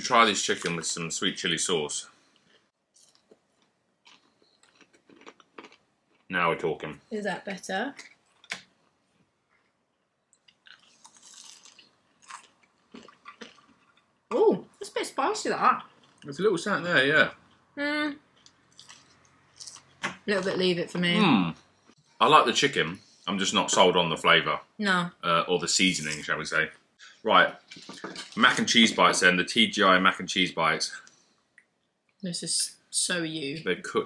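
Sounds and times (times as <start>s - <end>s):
person chewing crispy food: 2.3s - 6.3s, 10.4s - 14.3s, 15.8s - 16.3s, 18.3s - 20.1s
wet mouth sounds: 10.4s - 14.0s, 18.5s - 20.0s
person humming: 21.2s - 21.5s.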